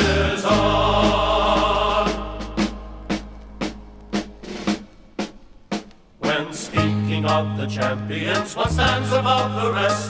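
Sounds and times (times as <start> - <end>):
snare-like drum beating: 0.0 - 6.8.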